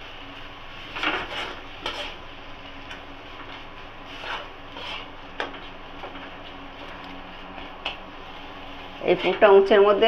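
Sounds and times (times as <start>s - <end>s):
metal spatula scraping paste: 1.0s - 2.2s, 4.1s - 5.1s.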